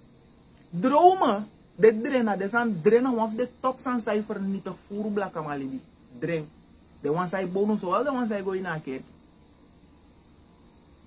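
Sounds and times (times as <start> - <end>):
crickets chirring: 0.0 - 11.0.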